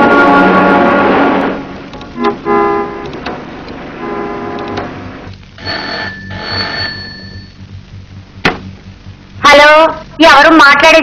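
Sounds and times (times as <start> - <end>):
clicks: 1.9 - 2.4
telephone bell ringing: 5.6 - 7.6
short tones: 5.6 - 7.7.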